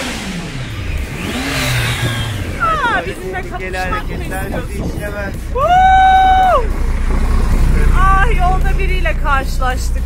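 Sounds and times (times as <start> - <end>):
rushing noise: 0.0 - 8.5
vehicle engine: 0.0 - 10.0.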